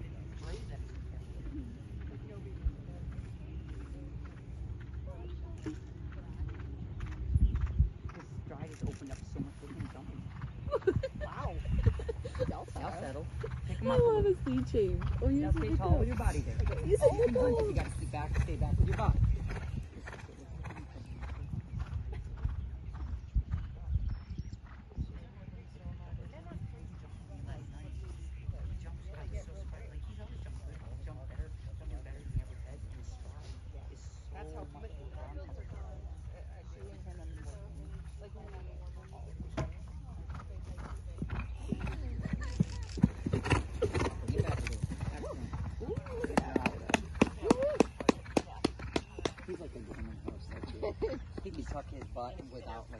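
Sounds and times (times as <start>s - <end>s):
wind on microphone: 0.0s - 36.6s
low voices: 8.0s - 21.4s.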